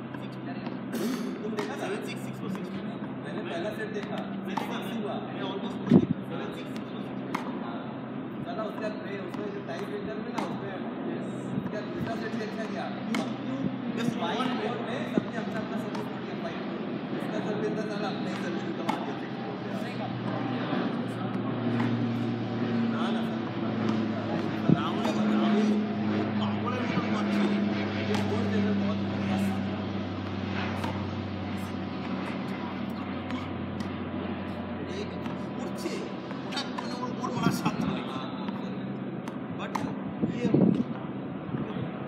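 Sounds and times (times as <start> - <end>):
faint voices: 0.0 - 42.0
low steady drone: 9.0 - 42.0.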